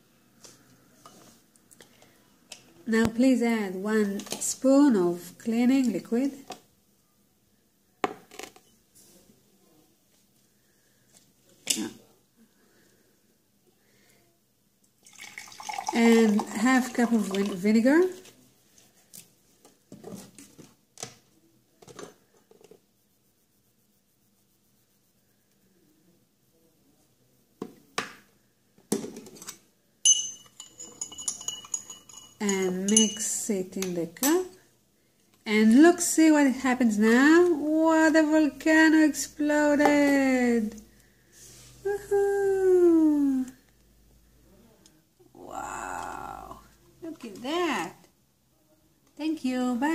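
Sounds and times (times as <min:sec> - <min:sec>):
glassware clinking: 0:29.2 - 0:33.3.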